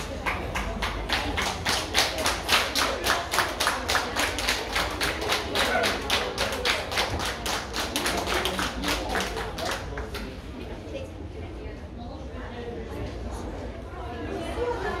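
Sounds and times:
crowd clapping in unison: 0.0s - 10.4s.

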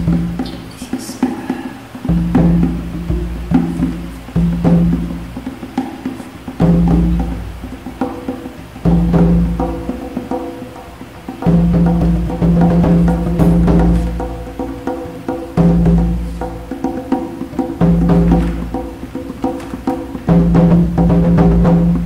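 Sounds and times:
knocking and clicking percussion: 3.6s - 22.0s.

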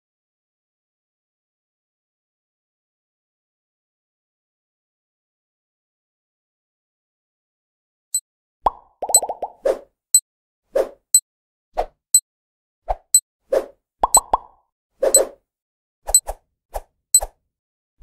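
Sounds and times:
cartoon hollow pops: 8.7s - 9.6s, 14.0s - 14.5s.

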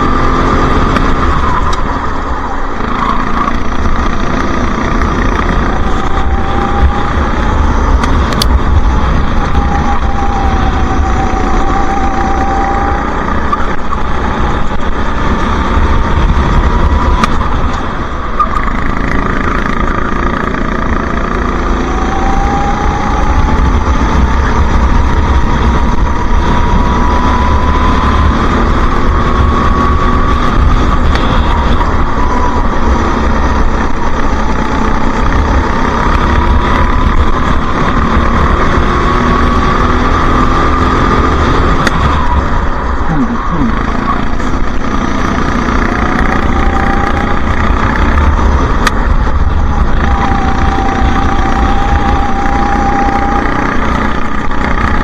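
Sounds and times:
go-kart engine running hard: 0.0s - 55.0s.

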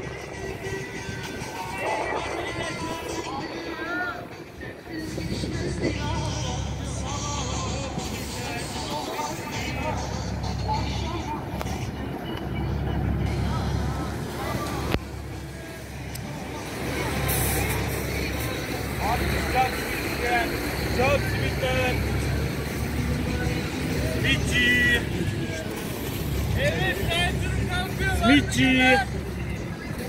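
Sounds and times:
distant traffic rumble: 0.0s - 30.0s
voices of passers-by: 0.0s - 30.0s.

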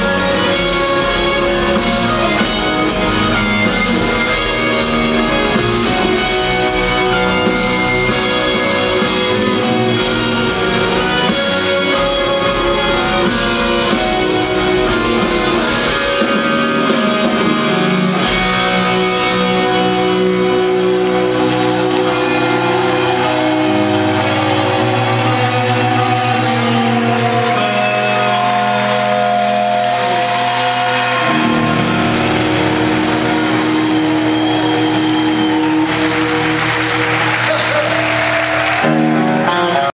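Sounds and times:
electric guitar sustained chords: 0.0s - 37.2s
rock band playing: 0.0s - 39.9s.

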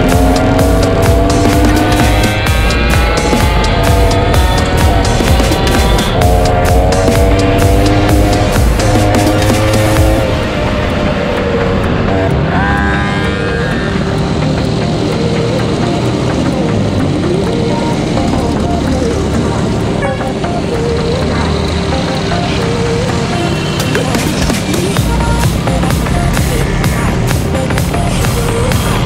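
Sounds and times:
background music: 0.0s - 29.0s
road and wind noise: 0.0s - 29.0s
two-stroke scooter engine revving: 0.0s - 29.0s.

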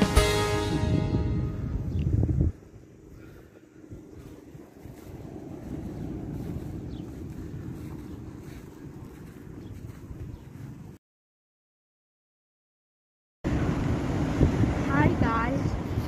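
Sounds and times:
background music: 0.0s - 1.9s
wind buffeting microphone: 0.5s - 11.0s, 13.5s - 16.0s.

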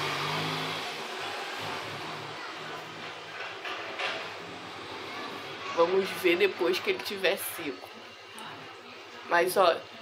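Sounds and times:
passing vehicle: 0.0s - 2.8s.

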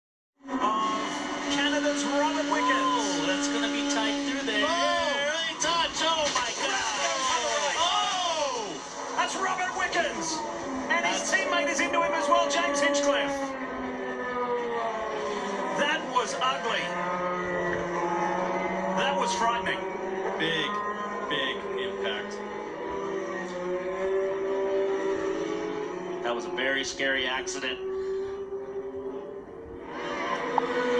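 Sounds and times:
racing car engines whining: 0.4s - 30.9s.

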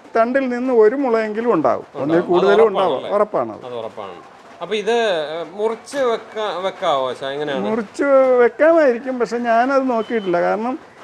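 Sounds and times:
man speaking: 0.1s - 10.8s.

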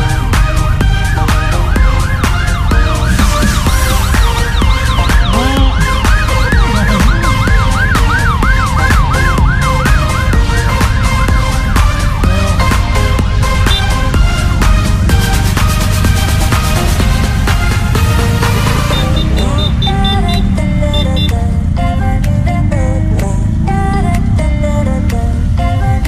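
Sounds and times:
siren yelping: 0.0s - 14.0s, 16.6s - 21.4s
electronic dance music: 0.0s - 21.4s.

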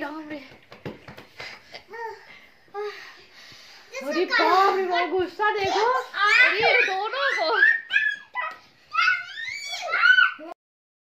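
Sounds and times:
children shouting and squealing: 5.7s - 10.6s.

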